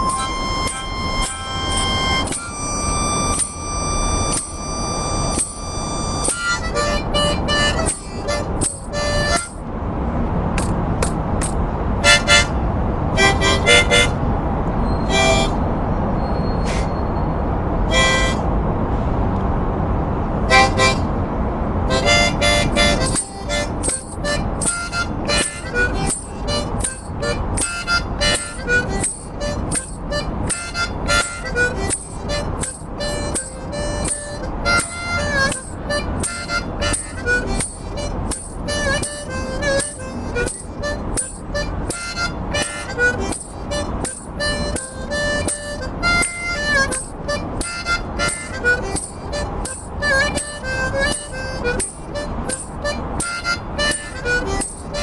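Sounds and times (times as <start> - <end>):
harmonica playing: 0.0 - 16.1, 17.6 - 18.8, 20.3 - 55.0
low steady rumble: 0.0 - 55.0.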